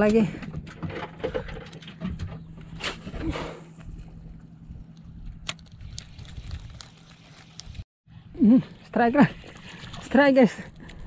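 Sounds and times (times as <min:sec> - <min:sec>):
steady low hum: 0:01.6 - 0:09.8.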